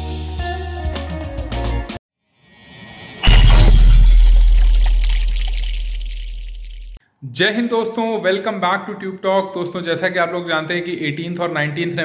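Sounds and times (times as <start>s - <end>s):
heavy impact with deep boom: 3.1s - 7.0s.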